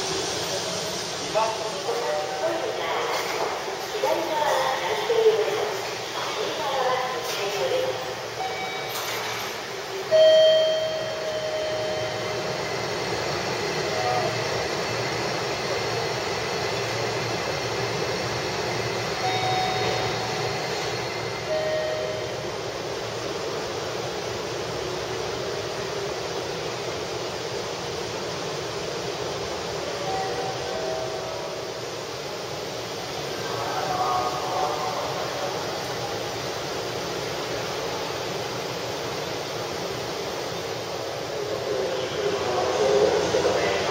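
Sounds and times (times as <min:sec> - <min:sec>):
short high tones: 0:10.1 - 0:12.4, 0:21.4 - 0:22.5
faint voices: 0:41.3 - 0:43.9.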